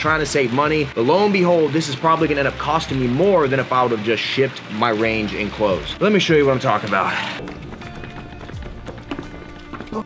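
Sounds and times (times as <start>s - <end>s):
background music sustained tones: 0.0s - 10.0s
footsteps on concrete stairs: 6.9s - 10.0s.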